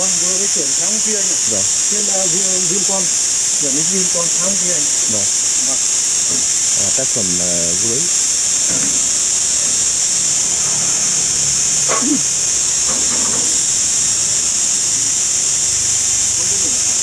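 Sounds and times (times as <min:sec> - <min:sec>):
loud high-pitched hiss: 0:00.0 - 0:17.0
faint voice-like sound: 0:11.9 - 0:12.2.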